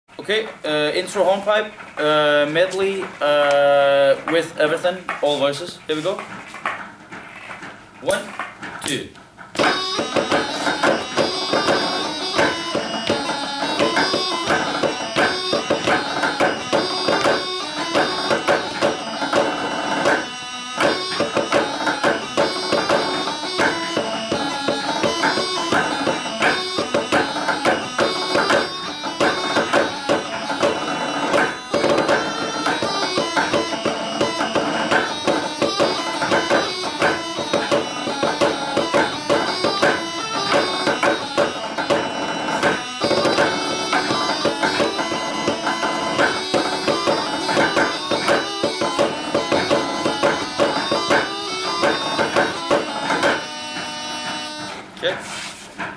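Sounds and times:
mallets striking a rhythm: 8.0 - 55.0
small ensemble playing a hornpipe: 9.6 - 55.6.

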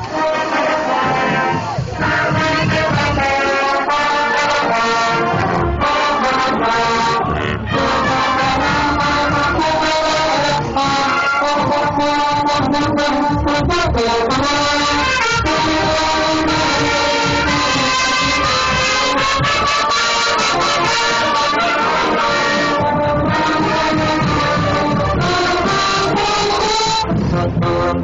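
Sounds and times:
marching band playing: 0.0 - 28.0.

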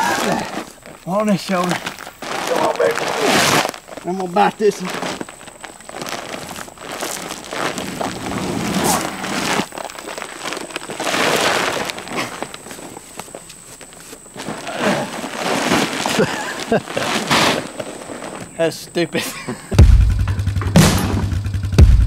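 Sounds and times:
footsteps through grass: 0.0 - 18.4
paper sacks rustling: 0.0 - 18.7.

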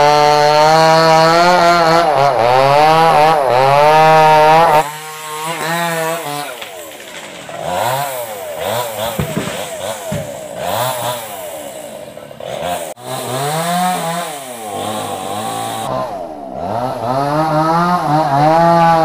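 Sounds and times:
chainsaw engine revving: 0.0 - 19.0.

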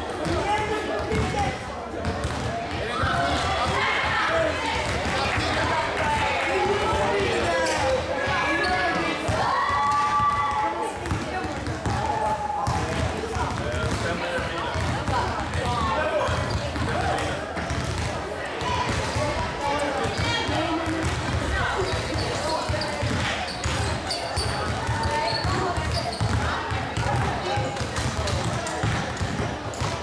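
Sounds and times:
basketballs bouncing on floor: 0.1 - 8.5, 9.3 - 30.0
children talking: 2.6 - 13.5, 15.0 - 30.0.

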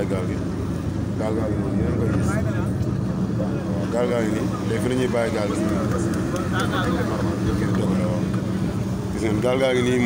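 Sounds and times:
boat engine humming: 0.0 - 10.0
water rushing along hull: 0.0 - 10.0.

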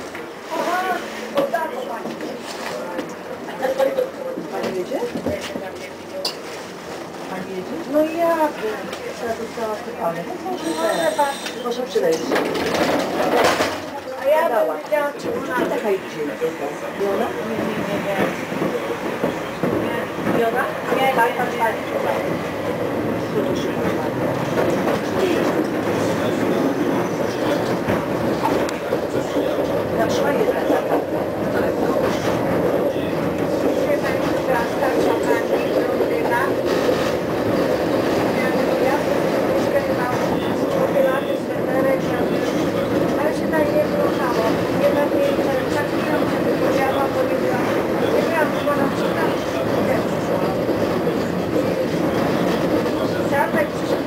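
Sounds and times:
tram running: 0.0 - 54.0
voices in tram car: 0.0 - 54.0.

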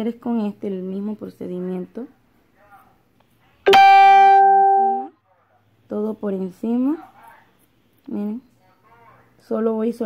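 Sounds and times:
loud chime: 3.7 - 5.1.

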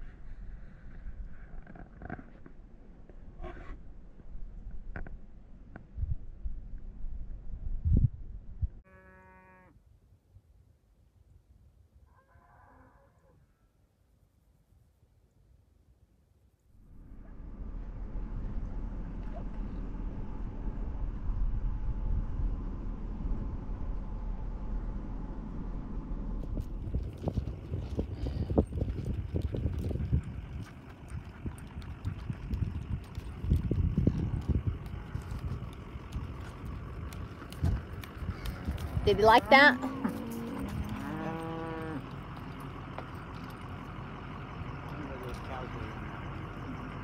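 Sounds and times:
steady low rumble: 0.0 - 8.8, 16.7 - 47.0
hooves clip-clop on dirt: 26.4 - 47.0.

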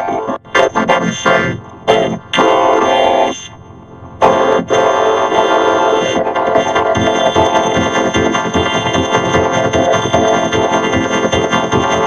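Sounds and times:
buzzy vocoder synth chords: 0.0 - 12.0.

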